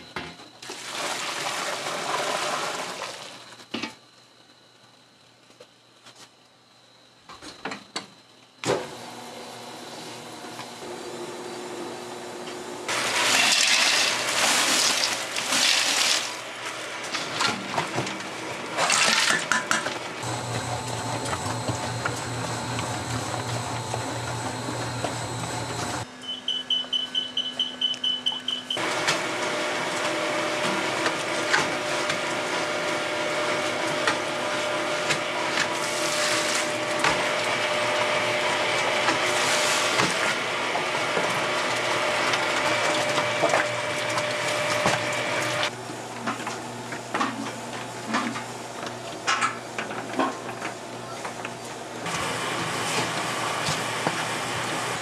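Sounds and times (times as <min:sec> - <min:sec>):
dough mixer motor humming: 0:20.0 - 0:26.1, 0:28.8 - 0:45.7.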